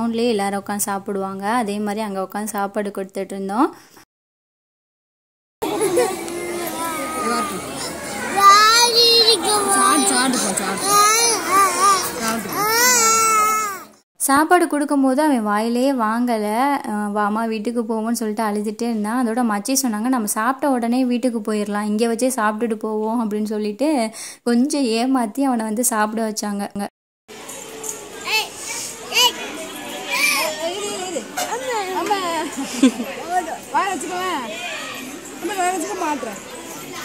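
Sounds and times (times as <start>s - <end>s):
children shouting and calling: 5.6s - 14.0s, 27.4s - 37.0s
small boy crying: 8.6s - 13.9s.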